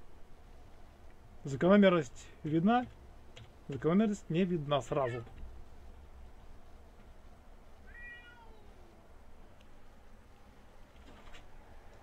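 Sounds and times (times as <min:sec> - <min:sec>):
cat meowing: 0:07.8 - 0:09.0.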